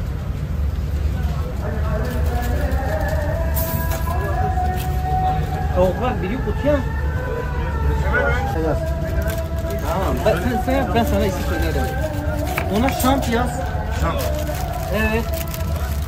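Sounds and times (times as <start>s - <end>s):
indistinct voices: 1.0s - 16.0s.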